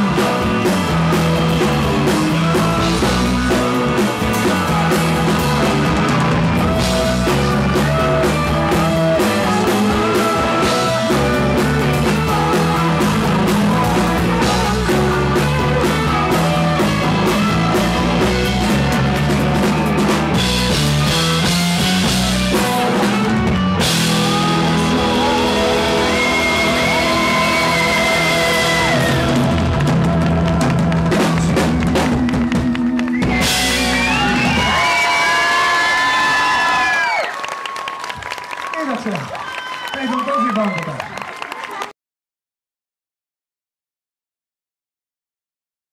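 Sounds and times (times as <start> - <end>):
man singing: 0.0 - 34.8
drum beat: 0.0 - 35.4
live pop-rock band: 0.0 - 39.2.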